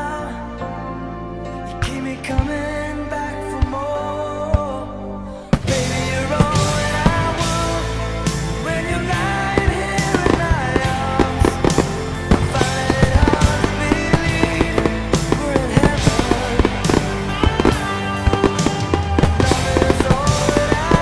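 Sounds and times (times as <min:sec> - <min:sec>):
rock music: 0:00.0 - 0:21.0
fireworks bangs: 0:05.5 - 0:21.0.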